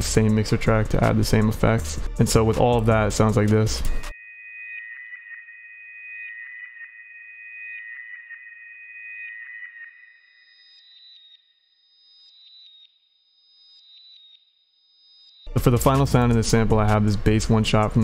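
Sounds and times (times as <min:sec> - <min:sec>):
synth bell pattern with reverb: 0:04.0 - 0:11.5.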